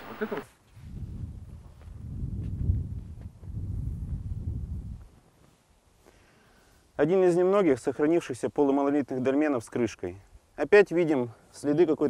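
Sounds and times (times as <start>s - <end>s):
wind buffeting microphone: 0.0s - 5.2s.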